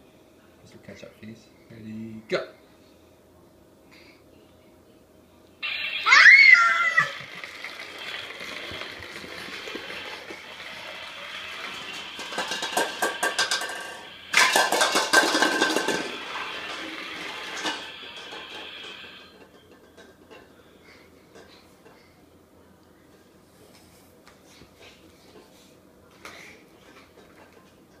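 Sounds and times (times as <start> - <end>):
toy electronic revving sound: 5.6 - 14.6
toy motor running: 5.6 - 14.7
toy rattling: 7.1 - 16.3.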